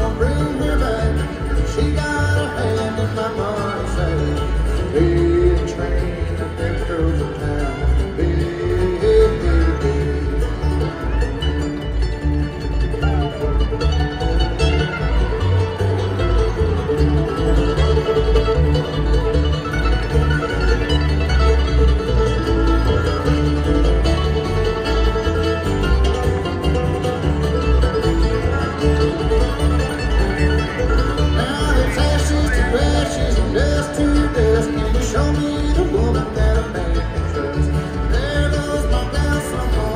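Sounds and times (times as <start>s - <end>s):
bluegrass band playing: 0.0s - 39.9s.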